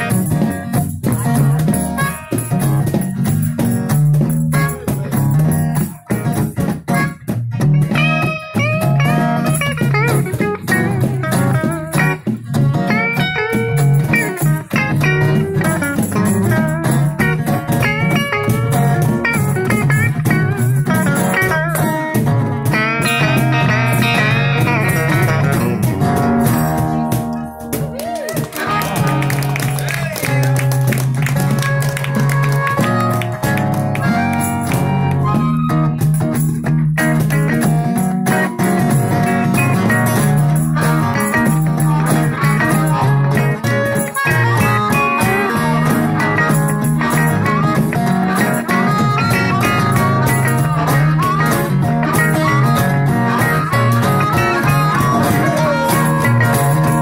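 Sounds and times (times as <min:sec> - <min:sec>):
strummed acoustic guitar: 0:00.0 - 0:27.9, 0:28.5 - 0:57.0
bass line: 0:00.0 - 0:57.0
electric guitar lead: 0:00.0 - 0:57.0.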